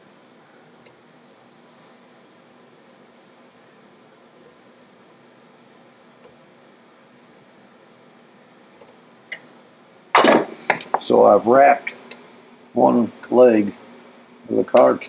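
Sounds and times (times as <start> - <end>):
steady low hum: 0.0 - 15.0
man talking: 11.0 - 12.0, 12.8 - 13.8, 14.5 - 15.0.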